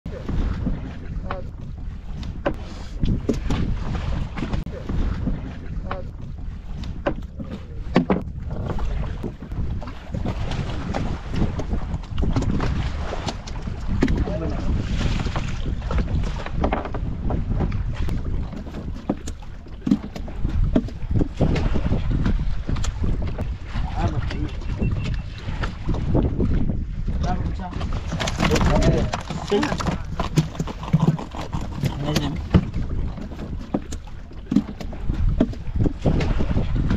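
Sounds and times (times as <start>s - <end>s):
sea water rushing: 0.1s - 36.9s
water splashes: 0.1s - 36.9s
wind buffeting microphone: 0.1s - 36.9s.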